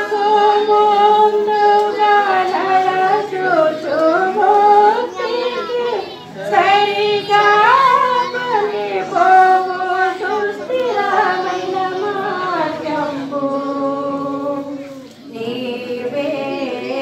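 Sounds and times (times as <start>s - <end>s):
woman singing slow melody: 0.0s - 5.2s, 6.4s - 17.0s.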